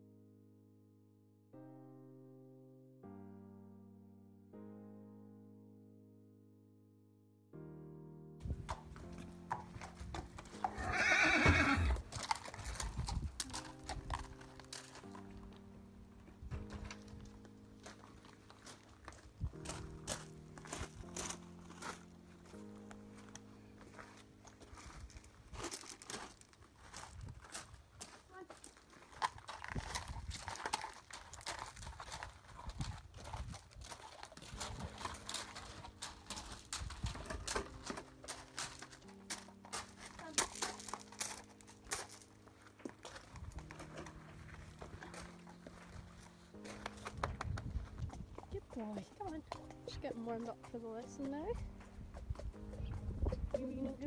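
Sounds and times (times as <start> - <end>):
background music: 0.0 - 54.0
hooves clip-clopping: 8.4 - 54.0
horse whinnying: 10.5 - 12.1.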